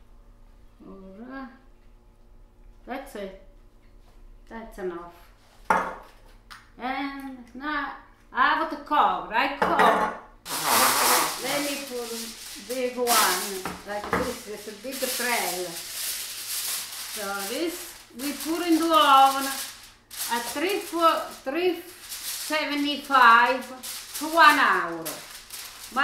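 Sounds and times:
woman talking: 0.8s - 1.6s, 2.8s - 3.4s, 4.5s - 5.2s, 6.8s - 15.9s, 17.1s - 26.0s
aluminium foil crinkling: 10.5s - 26.0s.

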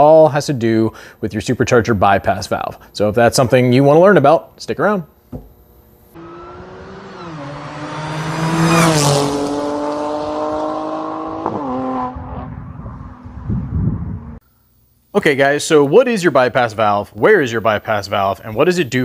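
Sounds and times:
car engine revving: 6.2s - 14.4s.

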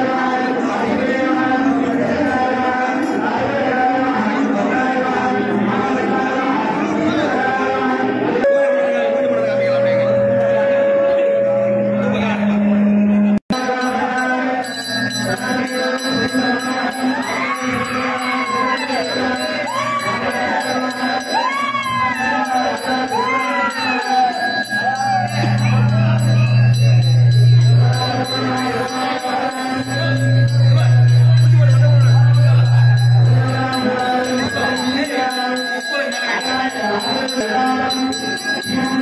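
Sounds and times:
crowd noise: 0.0s - 39.0s
gliding pitched tone: 8.4s - 13.4s, 14.6s - 35.1s
bell ringing continuously: 8.4s - 39.0s
steady low drone: 24.7s - 34.4s.

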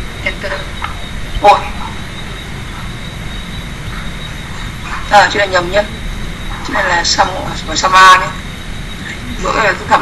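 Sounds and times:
thin high whine: 0.0s - 10.0s.

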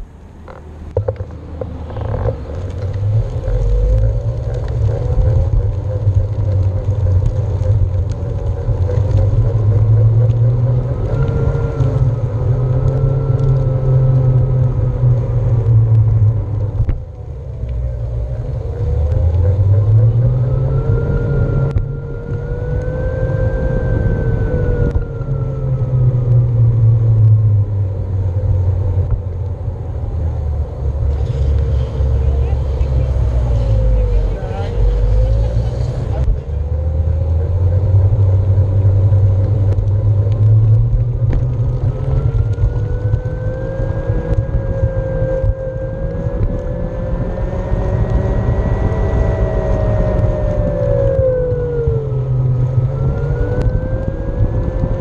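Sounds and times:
tire rumble on pavement: 0.0s - 55.0s.

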